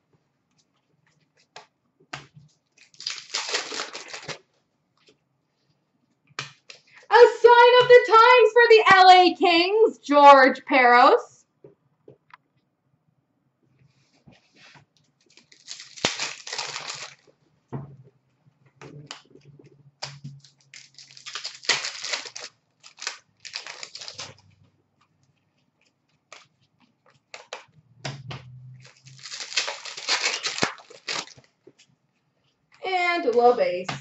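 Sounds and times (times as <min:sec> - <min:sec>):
wrappers tearing and crinkling: 0:02.8 - 0:04.5, 0:15.3 - 0:17.3, 0:20.1 - 0:24.6, 0:28.8 - 0:31.5.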